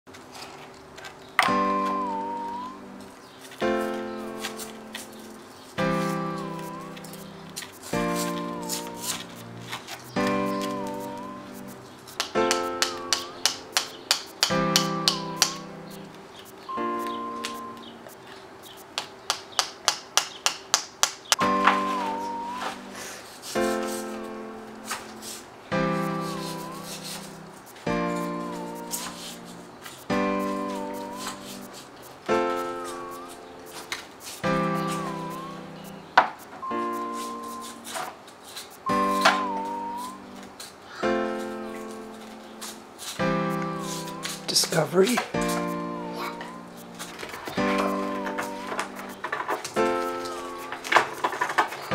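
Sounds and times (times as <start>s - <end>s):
ringing chords: 1.4s - 5.2s, 5.8s - 18.3s, 21.4s - 23.0s, 34.4s - 37.9s, 38.8s - 42.2s
short melody line: 1.5s - 5.2s, 5.8s - 13.8s, 14.5s - 18.2s, 21.4s - 24.7s, 25.7s - 33.8s, 34.4s - 36.0s, 36.6s - 38.0s, 38.8s - 40.5s, 43.2s - 49.2s
quick repeated notes: 1.5s - 23.0s, 25.7s - 38.0s, 38.7s - 42.2s.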